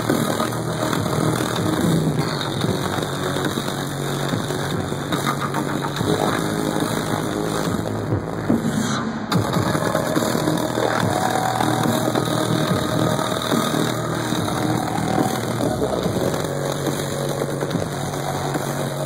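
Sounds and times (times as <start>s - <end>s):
deep bass line: 0.0s - 19.0s
loud electronic music: 0.0s - 19.0s.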